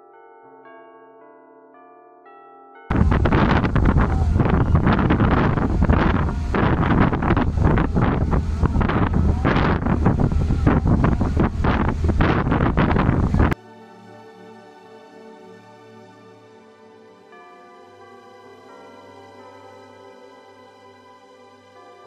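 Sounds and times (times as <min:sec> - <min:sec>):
wind buffeting microphone: 0:02.9 - 0:13.6.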